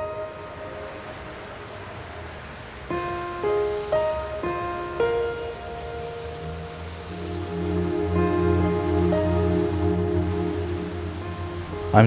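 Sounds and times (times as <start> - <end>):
low rumble and hiss: 0.0 - 12.0
sparse background music: 0.0 - 12.0.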